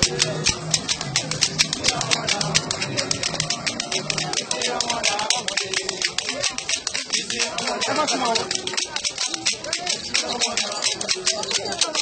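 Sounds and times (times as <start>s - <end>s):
crowd voices: 0.0s - 12.0s
percussion strikes: 0.0s - 12.0s.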